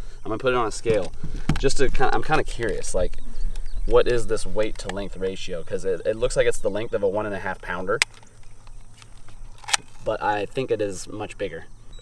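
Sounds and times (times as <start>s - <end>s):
faint handling noise: 0.6s - 5.5s, 7.3s - 11.2s.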